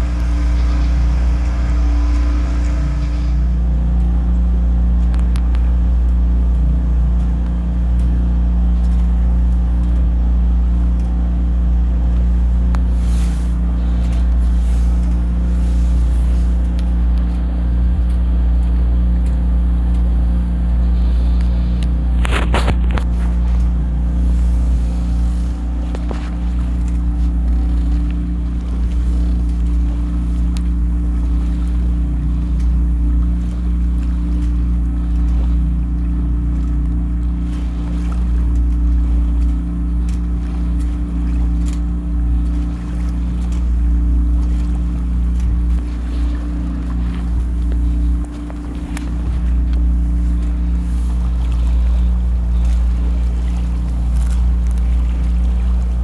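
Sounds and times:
boat motor hum: 0:00.0 - 0:56.0
water rushing along hull: 0:00.0 - 0:56.0.

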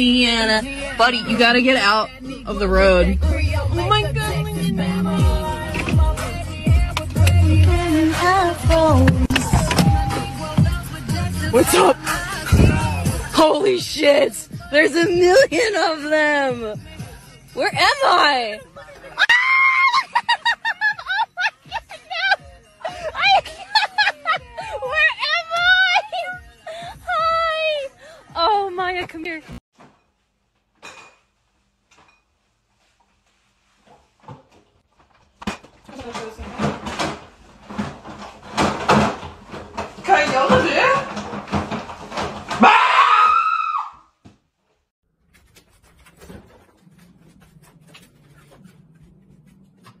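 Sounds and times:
woman laughing high-pitched: 0:19.2 - 0:27.2
person screaming: 0:42.6 - 0:44.0
rustling: 0:45.1 - 0:50.0.

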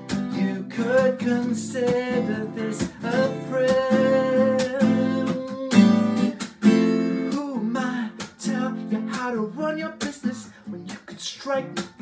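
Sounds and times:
acoustic guitar strumming: 0:00.0 - 0:12.0
man singing: 0:00.0 - 0:12.0.

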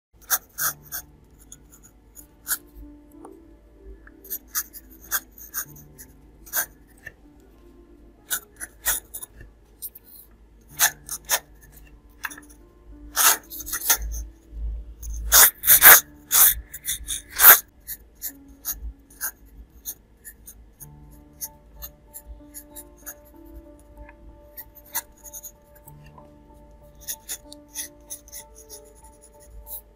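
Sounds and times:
pencil sketching on paper: 0:00.2 - 0:03.0, 0:04.1 - 0:07.5, 0:08.2 - 0:29.9.

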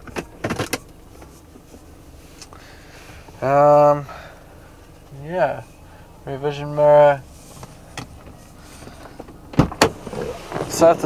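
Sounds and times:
car door latch clicks: 0:09.2 - 0:10.7.

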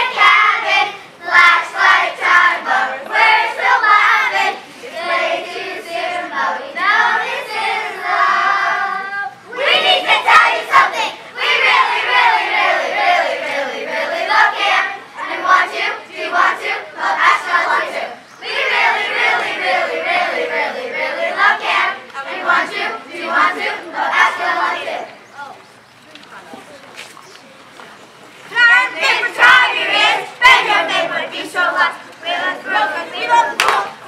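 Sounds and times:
children singing together: 0:00.0 - 0:25.1, 0:28.5 - 0:34.0.

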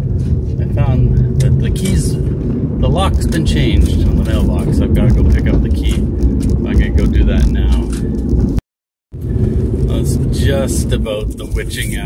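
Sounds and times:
car cabin road and engine rumble: 0:00.0 - 0:08.6, 0:09.2 - 0:12.0.

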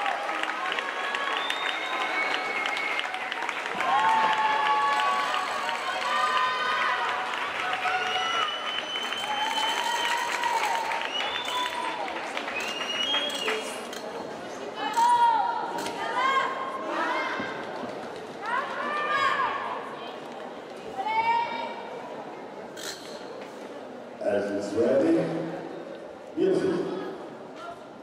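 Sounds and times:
spectators cheering and shouting: 0:00.0 - 0:12.2
crowd clapping: 0:00.0 - 0:14.0.

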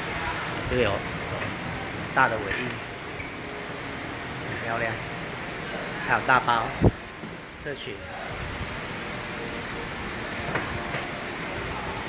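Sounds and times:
steady workshop hiss: 0:00.0 - 0:12.0.

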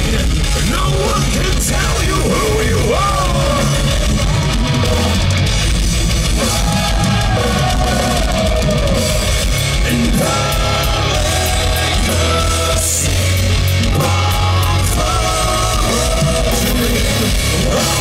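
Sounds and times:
distorted electric guitars: 0:00.0 - 0:18.0
drum kit: 0:00.0 - 0:18.0.

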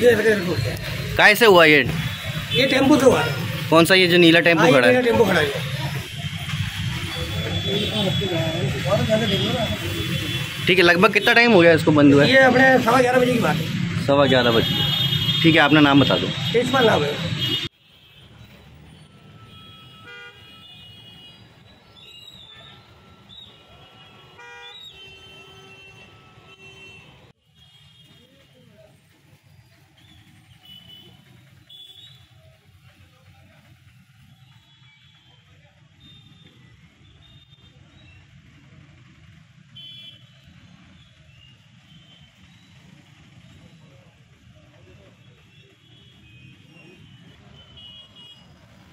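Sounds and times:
vehicle horns honking: 0:01.7 - 0:03.6, 0:04.5 - 0:21.5, 0:22.4 - 0:28.6, 0:30.6 - 0:32.4, 0:39.7 - 0:42.4, 0:45.1 - 0:48.9
low rumble of engines: 0:28.4 - 0:48.9.

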